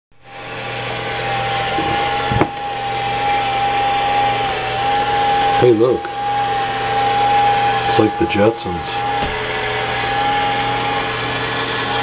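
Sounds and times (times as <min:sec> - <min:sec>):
robot vacuum cleaner whine: 0:00.2 - 0:12.0.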